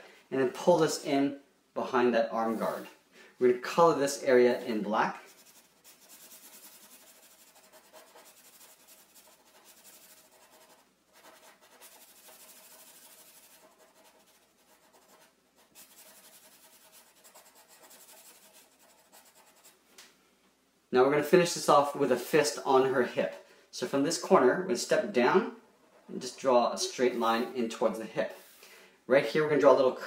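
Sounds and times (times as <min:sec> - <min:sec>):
marker scrubbing on paper: 0:02.4 - 0:02.9, 0:04.4 - 0:19.8.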